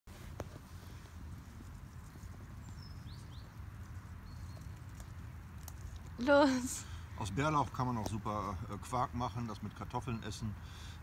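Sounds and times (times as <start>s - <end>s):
leaves rustling and snapping: 4.4s - 6.2s.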